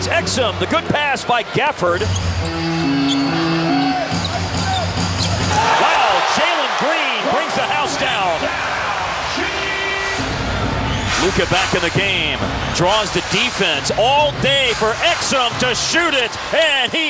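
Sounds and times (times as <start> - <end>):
crowd voices: 0.0 - 17.0.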